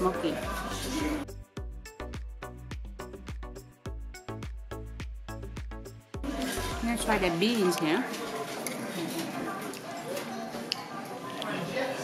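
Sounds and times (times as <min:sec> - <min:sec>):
background murmur: 0:06.2 - 0:12.0
people talking nearby: 0:06.2 - 0:12.0.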